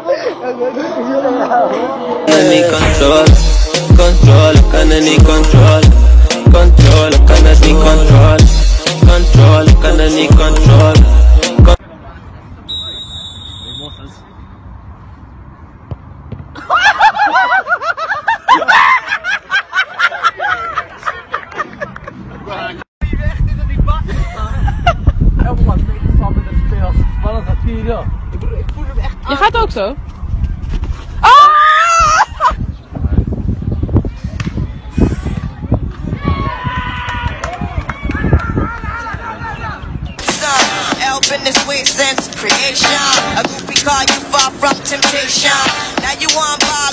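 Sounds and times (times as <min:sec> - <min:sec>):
repeated low thumps: 0:02.7 - 0:11.8
high-pitched laughter: 0:16.6 - 0:22.2.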